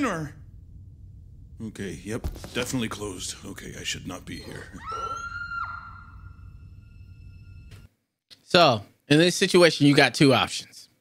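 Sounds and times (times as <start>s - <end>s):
short falling cry: 4.5s - 7.0s
person screaming: 4.6s - 6.1s.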